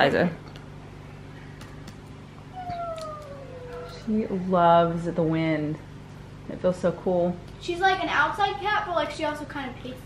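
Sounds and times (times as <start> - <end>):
low steady hum: 0.0 - 10.0
cat meowing: 2.6 - 4.0.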